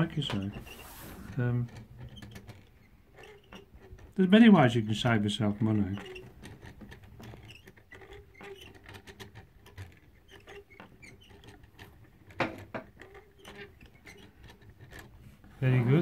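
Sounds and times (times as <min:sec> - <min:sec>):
wooden mechanism clicking: 0:00.0 - 0:16.0.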